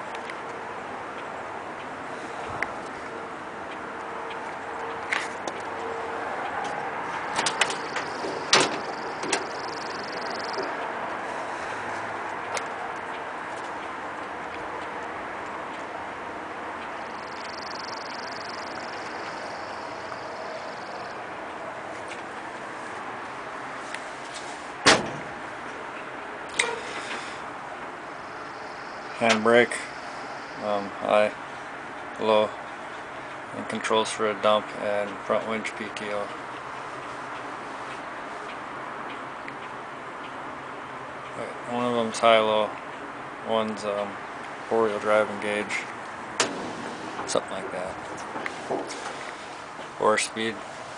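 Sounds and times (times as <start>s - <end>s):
metal door clicks and knocks: 7.3s - 9.6s, 24.8s - 25.3s, 46.4s - 47.4s.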